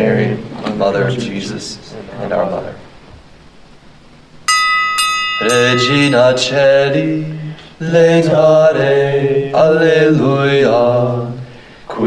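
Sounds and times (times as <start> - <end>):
bell ringing: 4.5 - 7.5.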